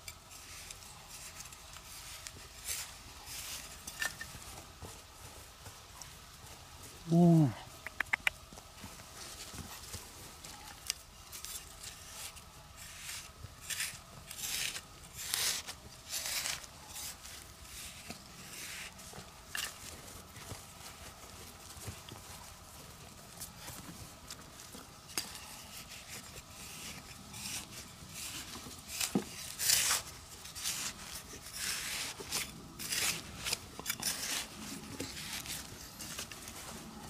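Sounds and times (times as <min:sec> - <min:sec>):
fingers scratching dry soil: 0:00.0 - 0:05.0, 0:09.2 - 0:37.0.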